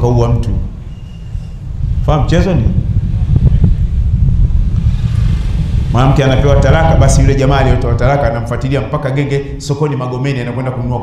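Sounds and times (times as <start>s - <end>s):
loud low rumble: 0.7s - 9.6s.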